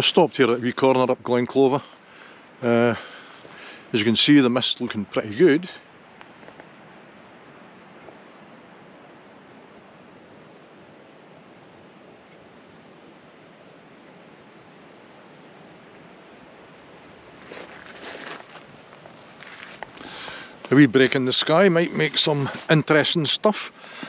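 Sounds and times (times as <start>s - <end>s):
outdoor background rush: 0.0s - 24.0s
rustling and scuffing: 17.3s - 20.8s, 21.4s - 22.9s.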